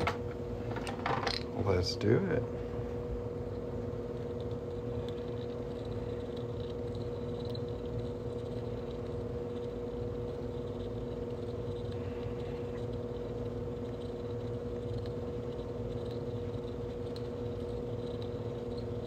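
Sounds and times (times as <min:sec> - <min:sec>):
steady mechanical hum: 0:00.0 - 0:19.0.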